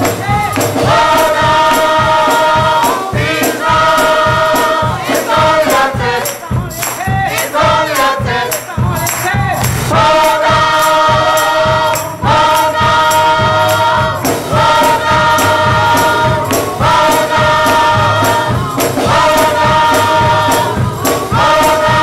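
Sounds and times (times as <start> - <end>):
gospel choir singing: 0.0 - 22.0
steady percussive beat: 0.0 - 22.0.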